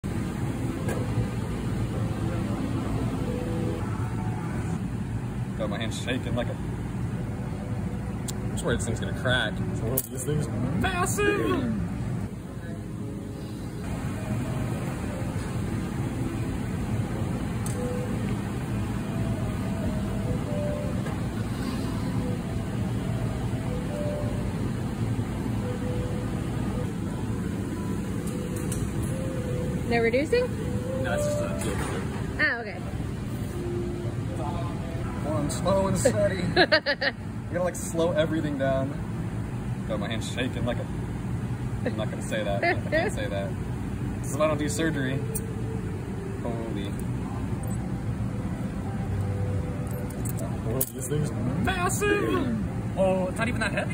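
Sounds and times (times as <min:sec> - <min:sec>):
roar of burners and ventilation: 0:00.0 - 0:53.9.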